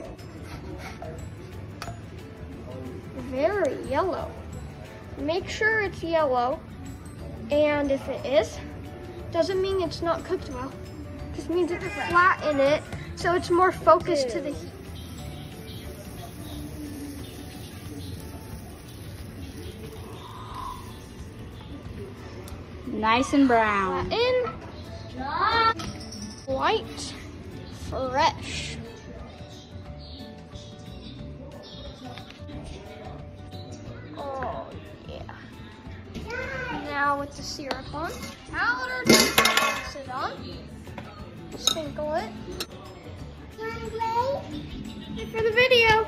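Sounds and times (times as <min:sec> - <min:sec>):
faint background music: 0:00.0 - 0:46.0
kitchenware clinks: 0:25.8 - 0:26.5, 0:38.1 - 0:40.0.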